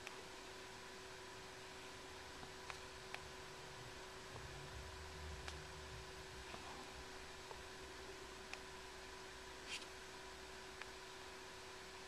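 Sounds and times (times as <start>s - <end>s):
small fan humming: 0.0s - 12.0s.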